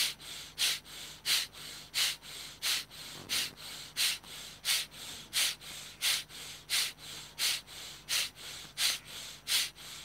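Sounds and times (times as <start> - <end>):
forceful rhythmic breathing: 0.0 - 10.0.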